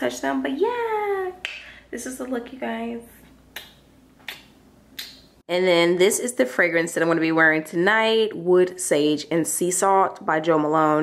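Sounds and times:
fingers snapping: 3.5 - 5.3.

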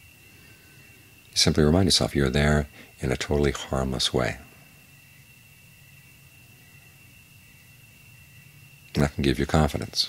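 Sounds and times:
faint low hum: 0.0 - 10.0
low hiss: 0.0 - 10.0
man speaking: 1.4 - 4.5, 8.9 - 10.0.

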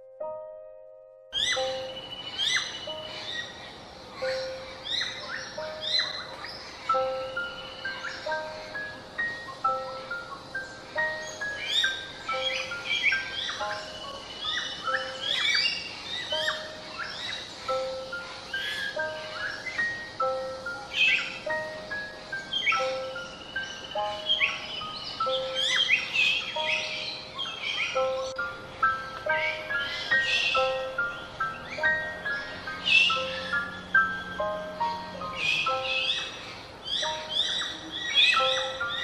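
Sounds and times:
background music with held notes: 0.0 - 39.0
myna bird calling: 1.4 - 39.0.

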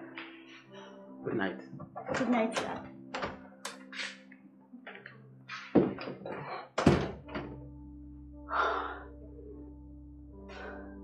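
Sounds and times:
soft music with held notes: 0.0 - 11.0
door shutting thuds: 1.8 - 3.4, 5.7 - 7.6.

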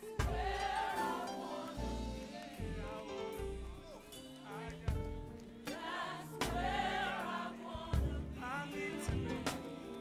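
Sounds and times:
band accompaniment: 0.0 - 10.0
gospel choir singing: 0.0 - 10.0.

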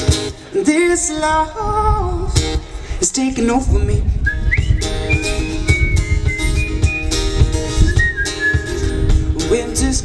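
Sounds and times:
strummed acoustic guitar: 0.0 - 1.5, 4.4 - 10.0
whistled melody: 4.3 - 8.9.

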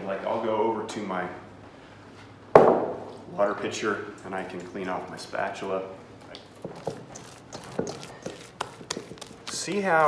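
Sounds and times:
hand squelching in dough: 6.3 - 10.0.

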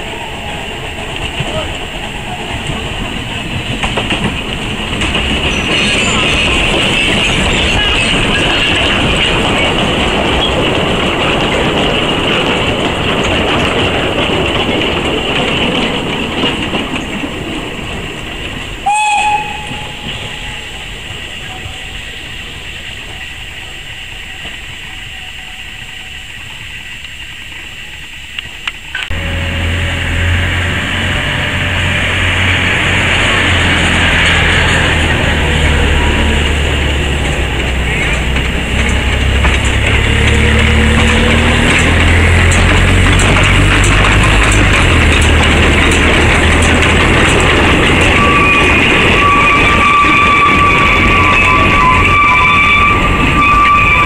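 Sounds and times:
steam locomotive rumble: 0.0 - 54.0
train running on rails: 0.0 - 54.0
train whistle blast: 18.8 - 26.4, 48.1 - 54.0.

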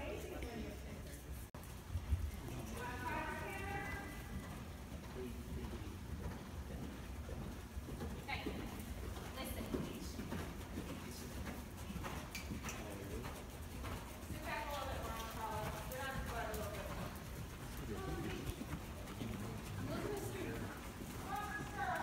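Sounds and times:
horse hoofbeats on sand: 1.6 - 22.0.

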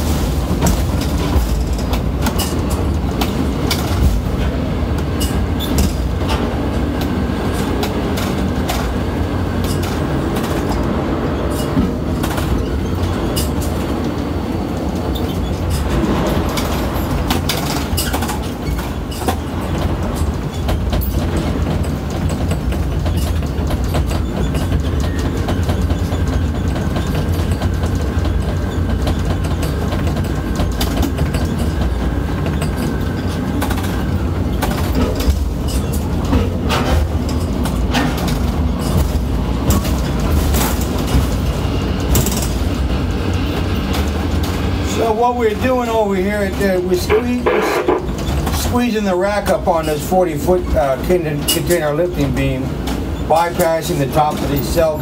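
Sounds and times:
crane machinery rumble: 0.0 - 55.0
rattling and clicking: 0.5 - 48.8.

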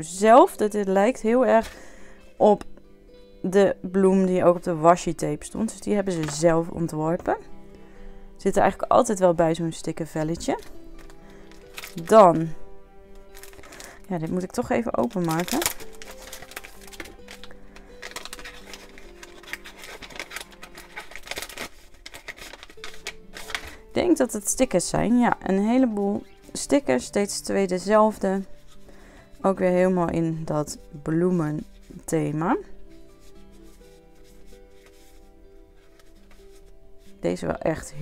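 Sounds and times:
soft background music: 0.0 - 38.0
paper stickers being handled: 10.1 - 12.1, 13.3 - 23.8, 32.9 - 37.1
packaging sleeve crinkling: 10.5 - 12.1, 13.2 - 23.9.

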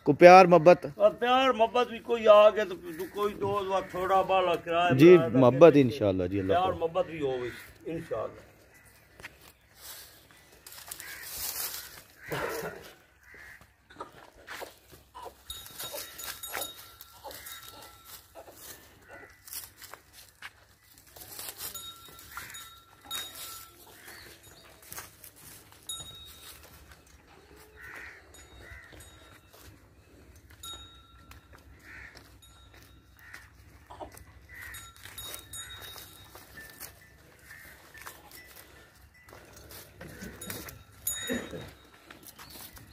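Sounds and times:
livestock shifting on straw: 9.3 - 12.3, 14.5 - 30.6.

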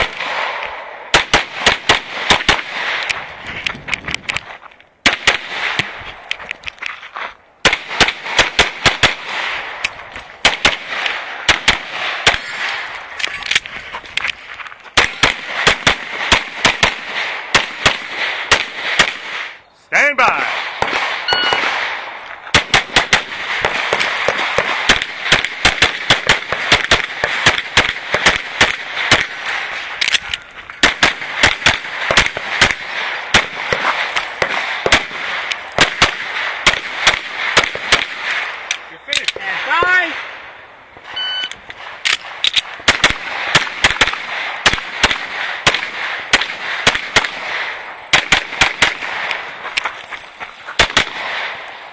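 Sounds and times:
rapid pistol shots: 0.0 - 3.2, 5.0 - 6.0, 7.6 - 13.7, 15.0 - 19.6, 20.4 - 30.2, 30.8 - 49.5, 50.8 - 51.9
short high beep: 21.3 - 21.6, 41.2 - 41.6.

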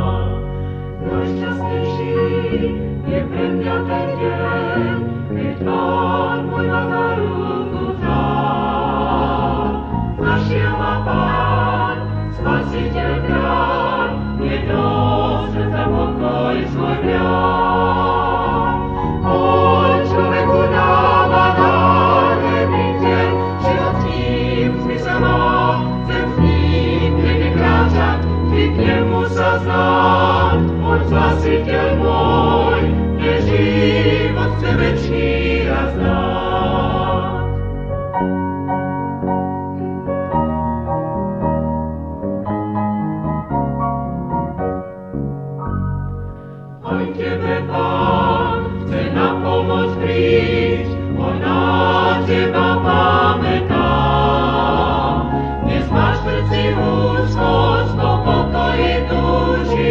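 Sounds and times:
choir singing sacred song: 0.0 - 38.0, 46.8 - 59.9
sustained keyboard accompaniment: 0.0 - 59.9.

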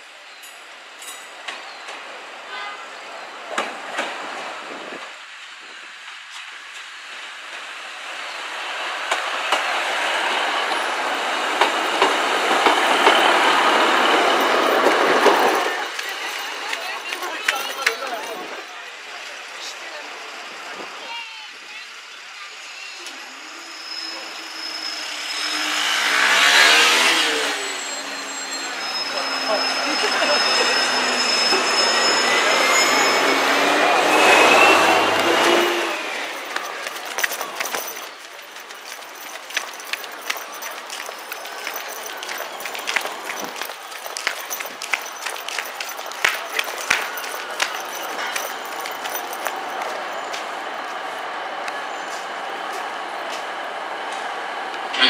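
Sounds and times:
train passing level crossing: 6.7 - 19.4, 22.6 - 50.8
train wheels clicking and knocking: 9.0 - 18.6, 34.3 - 50.5
rising whine: 23.0 - 38.0.

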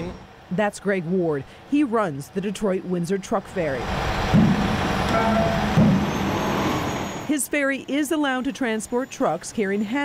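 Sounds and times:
diesel truck rumbling: 1.1 - 10.0
dull low thump: 4.3 - 4.8, 5.6 - 6.1.

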